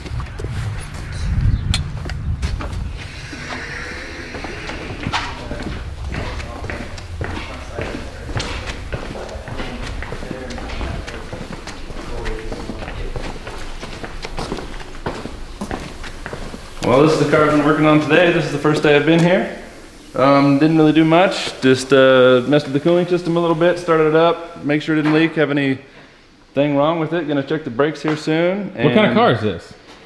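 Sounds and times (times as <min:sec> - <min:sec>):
footsteps: 0:00.0 - 0:20.2
faint background voices: 0:03.0 - 0:14.6.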